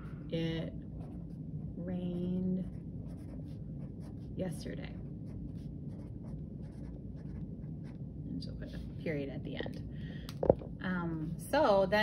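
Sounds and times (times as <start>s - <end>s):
marker scratching on paper: 1.0s - 8.0s.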